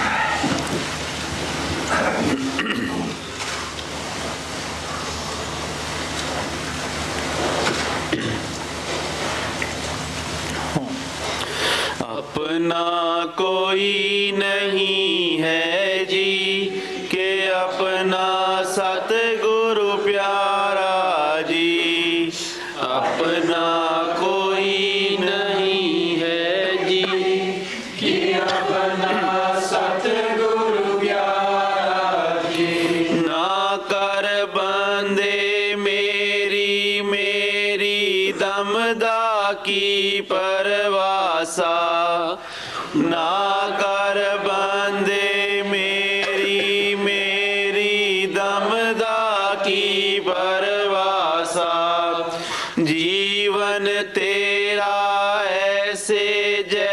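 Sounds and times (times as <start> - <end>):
person chanting slow melody: 12.0 - 52.1.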